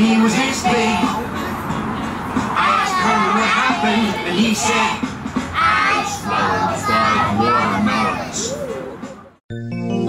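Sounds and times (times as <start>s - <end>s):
children singing in unison: 0.0s - 8.6s.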